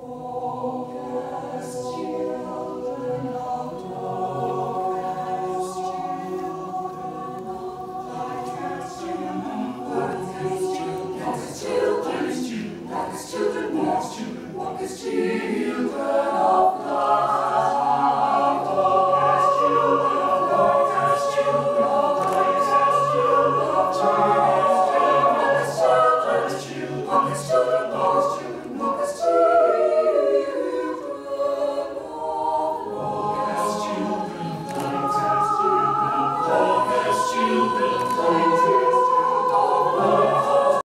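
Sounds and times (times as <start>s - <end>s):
mixed choir singing chords: 0.0s - 40.9s.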